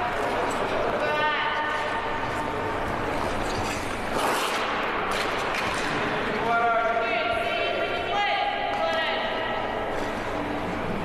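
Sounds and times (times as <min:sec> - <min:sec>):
skate blades scraping on ice: 0:03.3 - 0:04.8.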